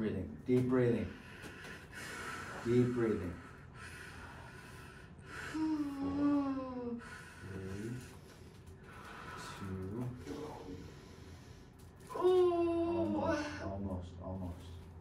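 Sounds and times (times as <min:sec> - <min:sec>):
woman moaning in pain: 0:05.5 - 0:07.0, 0:12.1 - 0:13.8.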